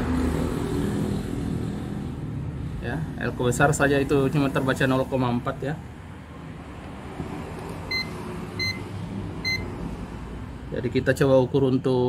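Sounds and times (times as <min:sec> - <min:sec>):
multimeter high beeps: 0:07.9 - 0:08.8, 0:09.4 - 0:09.7.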